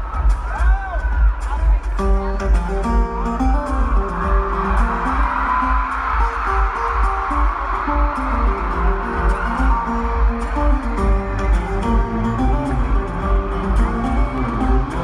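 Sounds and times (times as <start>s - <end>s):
acoustic guitar through pa: 0.0s - 15.0s
low thumping beat: 0.0s - 15.0s.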